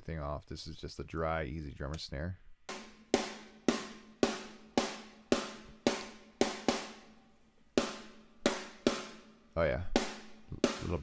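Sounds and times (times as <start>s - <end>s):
snare drum hits: 2.7s - 7.1s, 7.8s - 9.3s, 9.9s - 11.0s.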